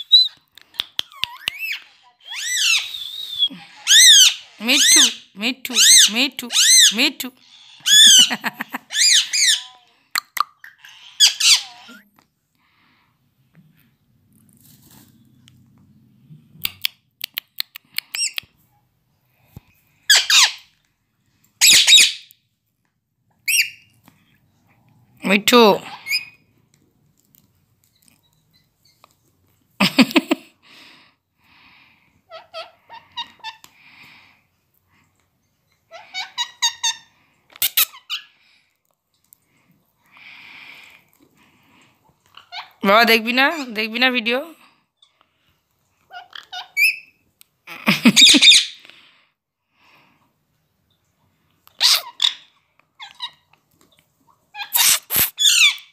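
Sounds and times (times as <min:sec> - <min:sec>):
parrot squeaky calls: 0:00.0 - 0:00.4, 0:01.1 - 0:09.8, 0:10.6 - 0:12.0, 0:20.1 - 0:20.7, 0:21.6 - 0:22.3, 0:23.4 - 0:23.9, 0:25.9 - 0:26.4, 0:35.9 - 0:38.4, 0:42.3 - 0:42.8, 0:46.1 - 0:47.2, 0:48.0 - 0:48.8, 0:51.8 - 0:53.5, 0:54.5 - 0:55.9.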